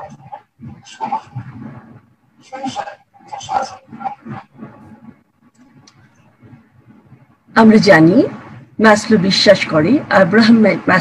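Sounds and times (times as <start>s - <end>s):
woman speaking: 7.5s - 11.0s.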